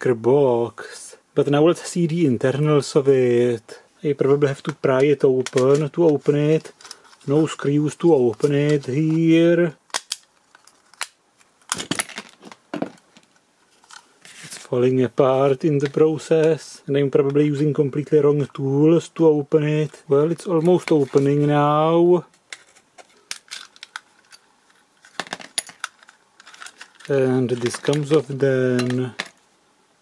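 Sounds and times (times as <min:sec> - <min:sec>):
plastic case cracking and snapping: 0:09.9 - 0:13.0.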